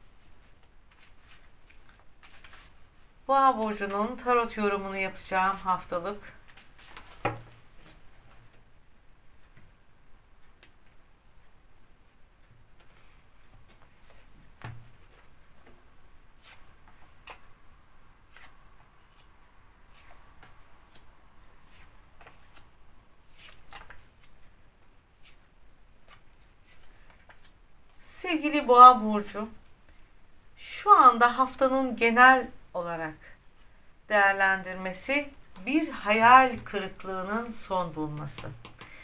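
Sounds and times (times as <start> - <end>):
cards shuffled and dealt: 0.4 - 2.8, 6.4 - 8.6, 16.4 - 17.5, 18.3 - 22.7, 23.3 - 24.5, 25.2 - 28.0, 38.1 - 39.0.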